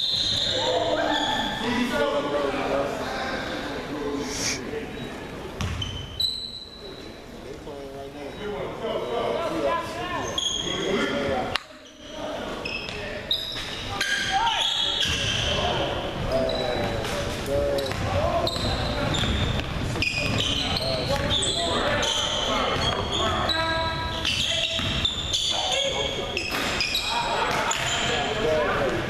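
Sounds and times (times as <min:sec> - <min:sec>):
sneakers squeaking: 0:00.0 - 0:01.7, 0:04.8 - 0:07.2, 0:08.2 - 0:29.0
players' voices: 0:00.3 - 0:05.7, 0:06.6 - 0:29.0.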